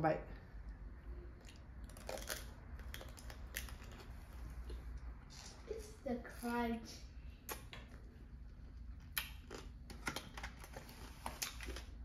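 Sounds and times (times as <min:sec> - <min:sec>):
candy shell crunching: 0:01.4 - 0:04.1.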